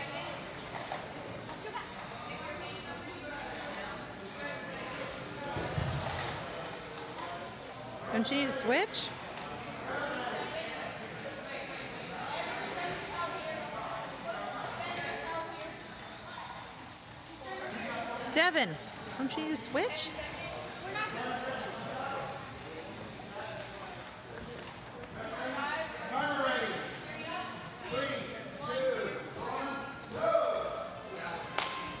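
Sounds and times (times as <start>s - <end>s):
indistinct talking echoing: 0.0s - 32.0s.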